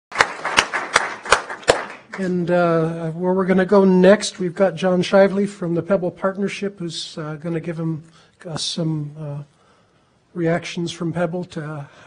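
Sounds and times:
audience applauding: 0.1s - 2.3s
sharp close claps: 0.1s - 2.3s.

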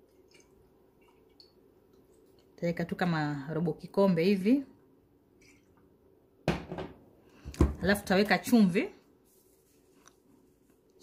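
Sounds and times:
bottle set down on countertop: 6.4s - 7.8s.

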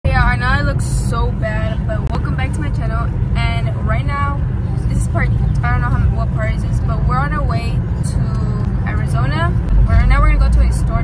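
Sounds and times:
car engine rumble and road noise: 0.0s - 11.0s
woman talking: 0.0s - 11.0s.

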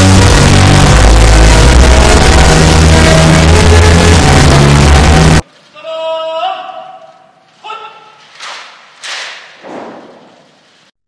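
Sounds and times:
loud music with heavy bass: 0.0s - 5.4s.

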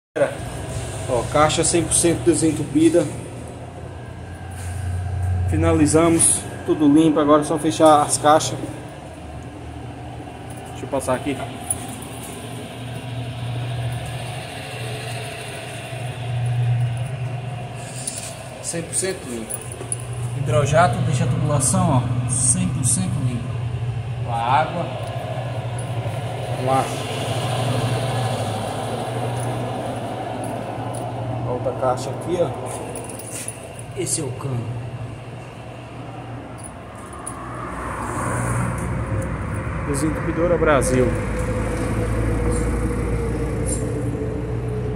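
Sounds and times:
vehicle passing: 0.2s - 44.9s
low engine hum: 0.3s - 44.9s.

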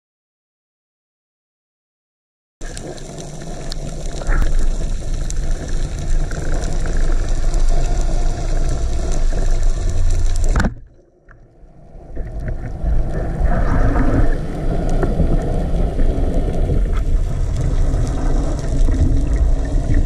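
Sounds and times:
underwater rumble and hiss: 2.6s - 20.0s.

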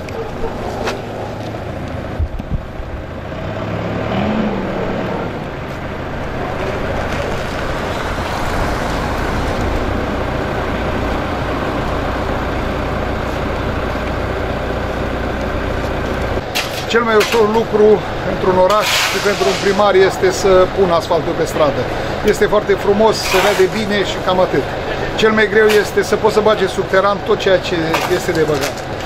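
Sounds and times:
diesel engine running: 0.0s - 29.0s.

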